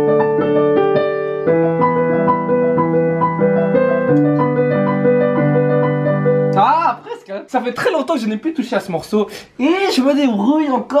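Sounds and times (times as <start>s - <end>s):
digital piano chords and melody: 0.0s - 8.3s
man talking: 6.6s - 11.0s.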